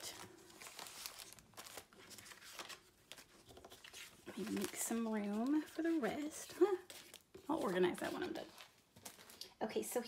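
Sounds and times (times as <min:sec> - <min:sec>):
paper rustling: 0:00.0 - 0:09.6
plastic sleeves crinkling: 0:00.0 - 0:09.6.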